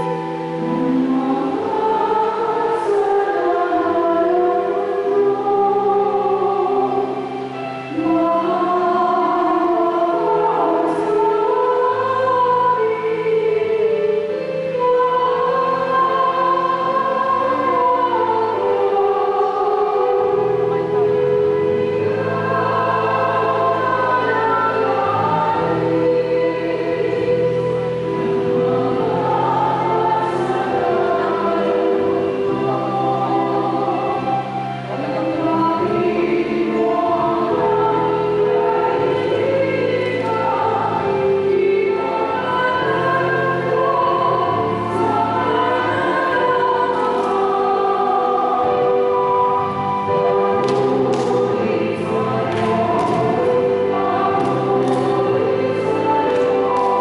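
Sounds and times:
choir singing a slow hymn: 0.0s - 57.0s.

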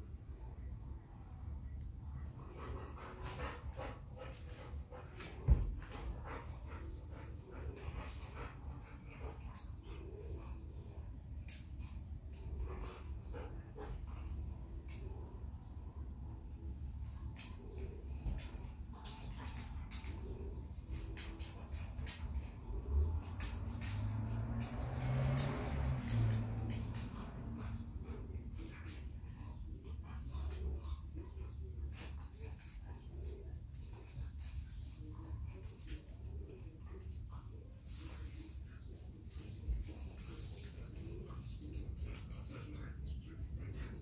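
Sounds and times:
dog play noises: 0.0s - 44.0s.

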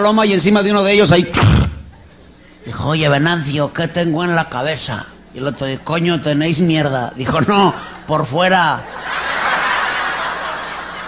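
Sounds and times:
audience laughing: 8.8s - 11.0s.

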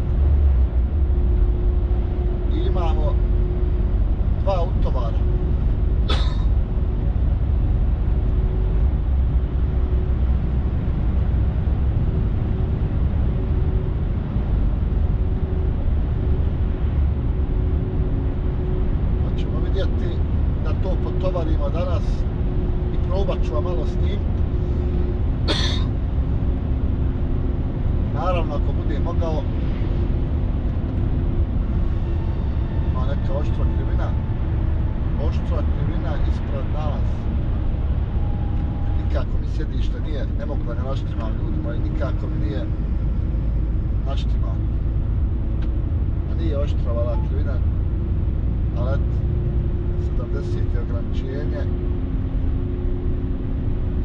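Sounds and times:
truck engine and tyre rumble: 0.0s - 54.0s.

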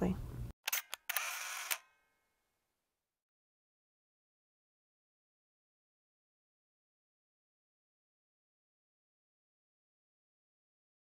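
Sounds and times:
camera shutter click: 0.7s - 1.9s.

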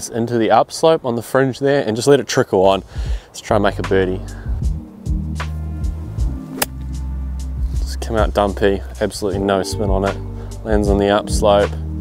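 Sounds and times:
background music with bass line: 3.0s - 12.0s
golf club striking ball: 6.5s - 7.0s.

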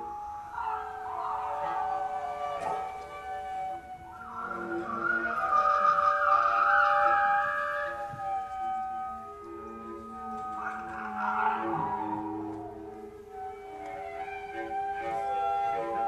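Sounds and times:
cellos and basses sliding tones: 4.2s - 16.0s.

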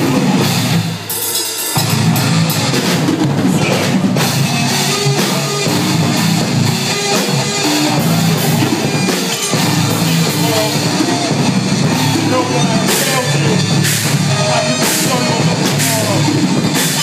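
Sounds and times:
bass guitar: 0.0s - 17.0s
distorted electric guitars: 0.0s - 17.0s
drum kit: 0.0s - 17.0s.

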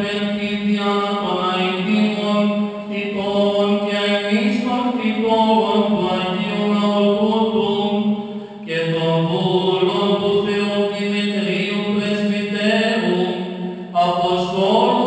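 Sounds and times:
man chanting melody: 0.0s - 15.0s.

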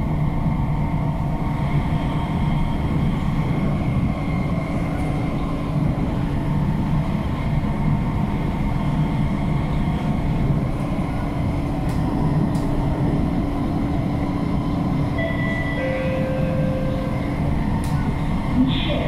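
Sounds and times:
constant hum: 0.0s - 19.0s
high whining tones: 15.2s - 17.7s.

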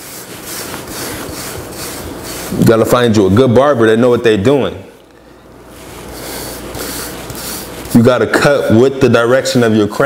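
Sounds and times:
brush scraping across hair: 0.0s - 2.9s, 5.7s - 8.2s.

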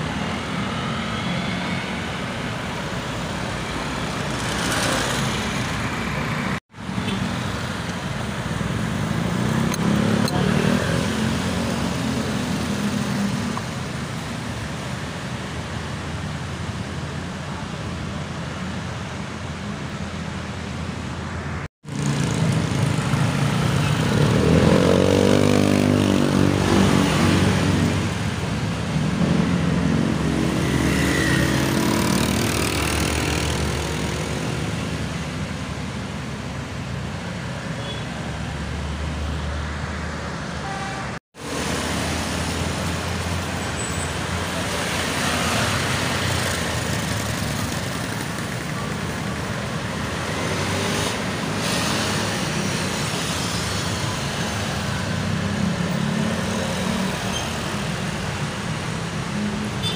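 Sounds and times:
motorbikes accelerating past: 21.9s - 28.2s, 29.0s - 34.6s.

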